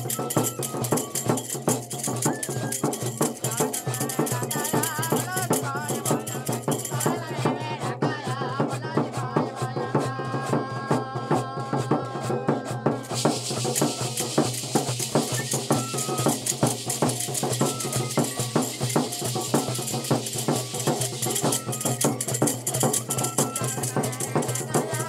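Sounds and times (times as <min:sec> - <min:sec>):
shaker rattle: 0:00.0 - 0:07.6, 0:12.9 - 0:25.0
background music with percussion: 0:00.0 - 0:25.0.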